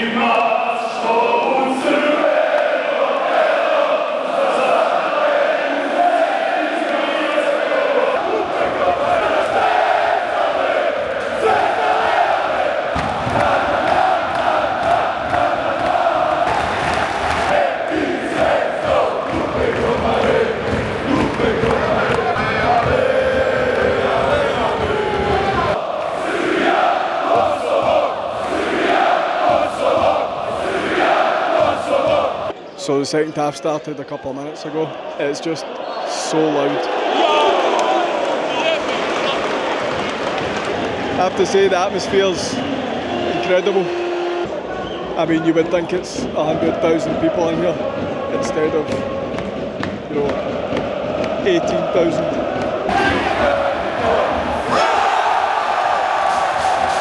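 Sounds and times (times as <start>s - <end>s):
arena crowd chanting and singing: 0.0s - 33.0s, 34.4s - 57.0s.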